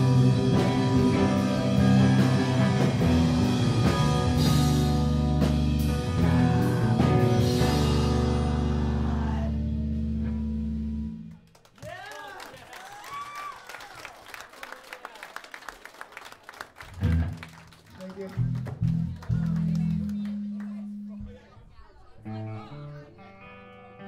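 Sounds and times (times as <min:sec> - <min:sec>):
guitar plucking low notes: 0:00.0 - 0:11.3, 0:22.2 - 0:24.0
crowd shouting and clapping: 0:08.2 - 0:09.7, 0:11.3 - 0:21.0.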